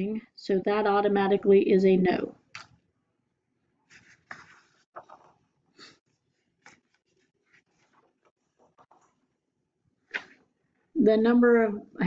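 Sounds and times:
paper pages rustling: 0:03.8 - 0:09.2
paper scraping: 0:03.9 - 0:09.1.

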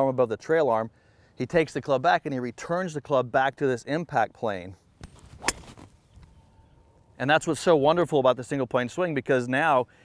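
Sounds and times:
golf club hitting ball: 0:05.0 - 0:05.9.

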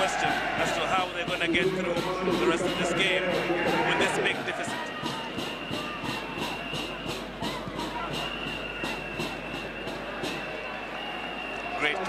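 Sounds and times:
fast drum beat: 0:00.0 - 0:10.7
stadium crowd noise: 0:00.0 - 0:12.0.

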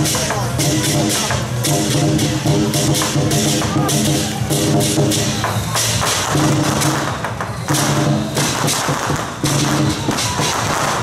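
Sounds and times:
clashing cymbals: 0:00.0 - 0:11.0
drum beats: 0:00.0 - 0:11.0.

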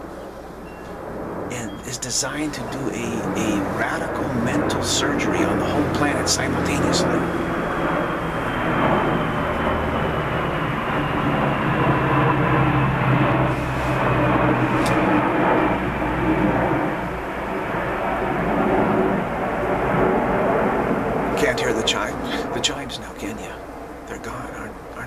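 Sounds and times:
aircraft engine drone: 0:00.0 - 0:25.0.

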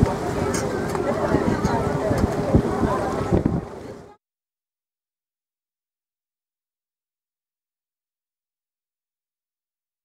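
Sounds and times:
boat engine humming: 0:00.0 - 0:04.1
people talking: 0:00.0 - 0:04.2
wind buffeting microphone: 0:00.0 - 0:04.2.

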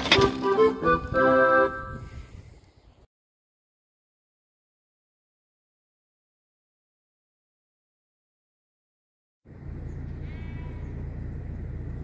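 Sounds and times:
sheep bleating: 0:10.2 - 0:10.9.

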